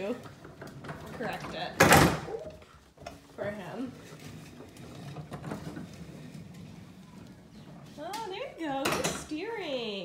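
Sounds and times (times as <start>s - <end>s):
plastic wheels rolling on hard floor: 0.0s - 9.9s.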